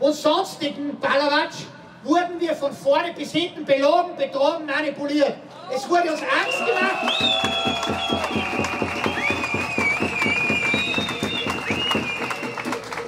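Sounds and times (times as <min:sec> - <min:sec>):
crowd clapping: 0:06.4 - 0:13.0
whistles: 0:06.4 - 0:13.0.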